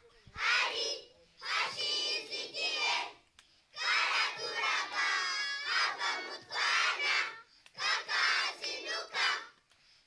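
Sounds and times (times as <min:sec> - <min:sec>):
children chanting in unison: 0:00.3 - 0:09.6.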